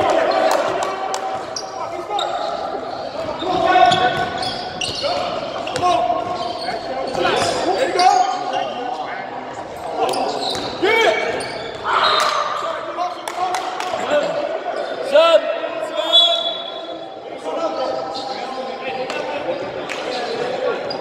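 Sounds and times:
players calling out: 0:00.0 - 0:21.0
sneaker squeaks: 0:01.4 - 0:08.6, 0:09.6 - 0:12.5, 0:20.1 - 0:21.0.

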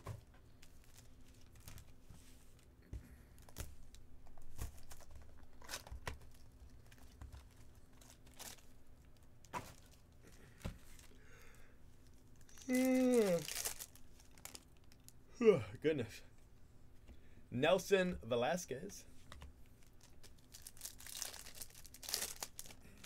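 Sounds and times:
foil wrappers crinkling and tearing: 0:03.4 - 0:11.1, 0:12.1 - 0:15.2, 0:19.8 - 0:23.0
wordless voice falling in pitch: 0:12.5 - 0:13.5.

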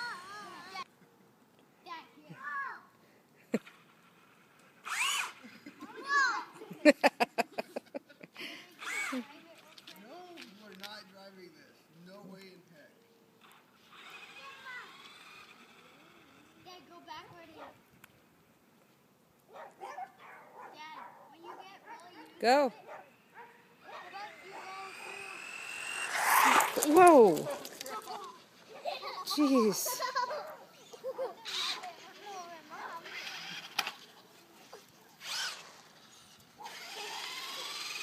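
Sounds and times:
electric motor high whine: 0:04.8 - 0:05.4, 0:23.8 - 0:27.8, 0:36.6 - 0:38.0
person laughing: 0:05.4 - 0:08.6, 0:29.4 - 0:31.5.

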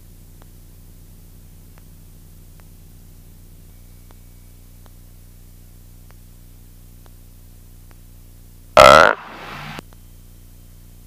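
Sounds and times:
light aircraft engine drone: 0:00.0 - 0:11.0
person saying uh: 0:08.8 - 0:09.3.

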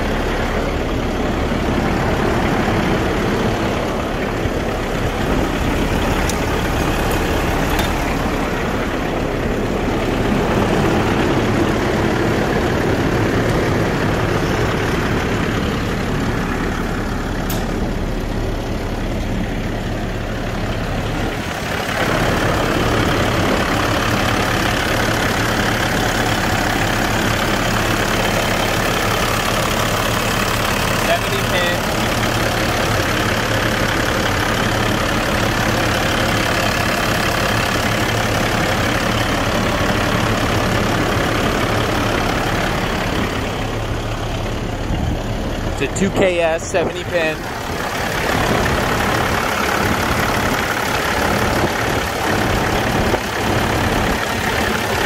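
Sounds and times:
diesel truck engine idling: 0:00.0 - 0:55.0.

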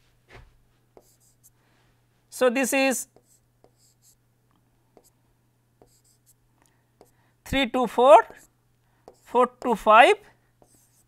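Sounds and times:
low steady hum: 0:00.0 - 0:11.0
stylus scraping on tablet: 0:10.6 - 0:11.0.

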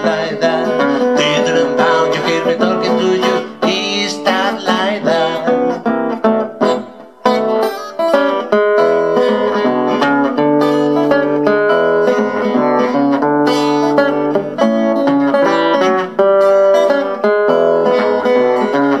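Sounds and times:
acoustic blues guitar: 0:00.0 - 0:19.0.

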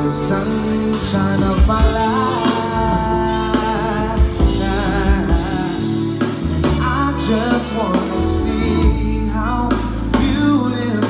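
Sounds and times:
bass line: 0:00.0 - 0:11.0
drum kit: 0:00.0 - 0:11.0
keyboard: 0:00.0 - 0:11.0
person singing: 0:00.0 - 0:11.0.

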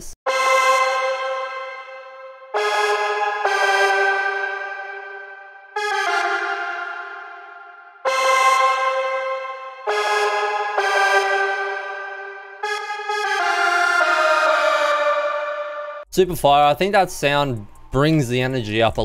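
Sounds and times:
synth lead melody: 0:00.3 - 0:16.1.

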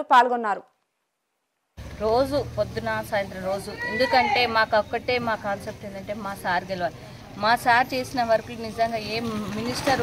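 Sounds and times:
woman talking: 0:00.0 - 0:00.7.

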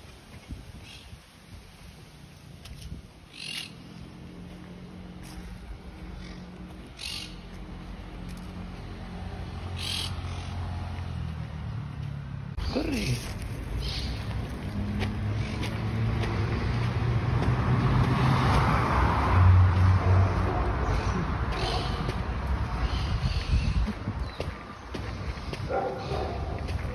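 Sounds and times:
low traffic hum: 0:00.0 - 0:26.9
soft footsteps on dirt path: 0:01.7 - 0:03.2, 0:03.8 - 0:09.3, 0:10.3 - 0:18.8, 0:19.6 - 0:26.9.

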